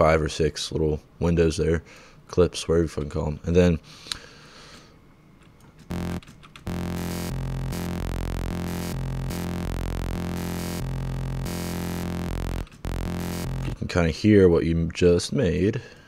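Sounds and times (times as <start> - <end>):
synthesizer low note shifting timbre: 5.9 - 13.8.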